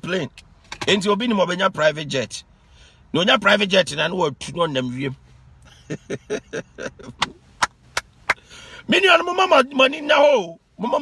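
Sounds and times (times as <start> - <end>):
man laughing: 5.7 - 7.3.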